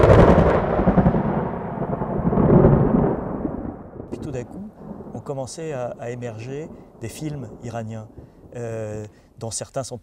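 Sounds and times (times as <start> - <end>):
thunder-like boom and rumble: 0.0 - 8.6.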